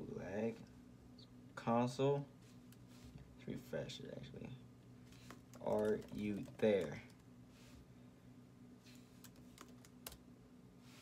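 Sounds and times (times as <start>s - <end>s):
low steady hum: 0.0s - 11.0s
computer keyboard keystrokes: 5.1s - 7.2s, 9.2s - 10.2s.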